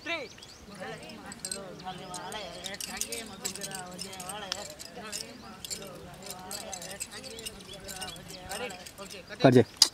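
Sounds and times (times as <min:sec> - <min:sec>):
group of voices: 0:00.7 - 0:09.2
dancers' steps and jingles: 0:00.7 - 0:09.3.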